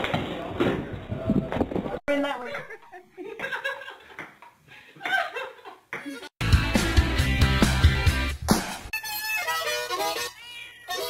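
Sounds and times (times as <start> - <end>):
people laughing: 2.6 - 4.2, 4.9 - 6.2.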